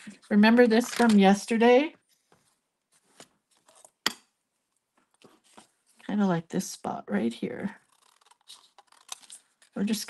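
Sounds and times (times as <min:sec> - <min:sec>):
paper rustling: 0:05.0 - 0:06.1, 0:07.8 - 0:09.8.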